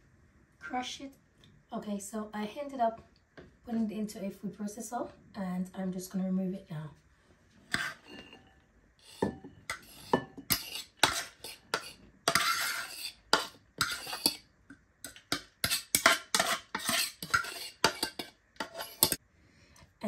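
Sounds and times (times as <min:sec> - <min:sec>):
scraping food out of bowl: 0:07.6 - 0:14.4, 0:15.1 - 0:19.2.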